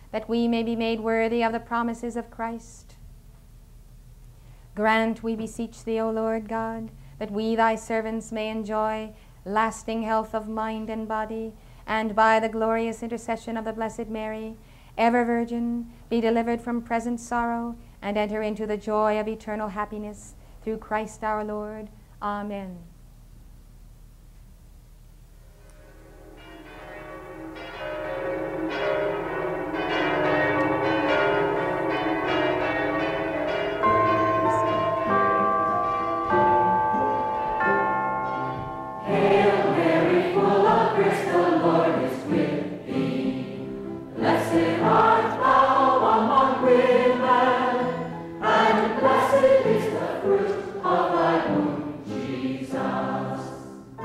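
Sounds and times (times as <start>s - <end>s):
instrumental held notes: 25.4s - 54.0s
choir singing with vibrato: 34.4s - 54.0s.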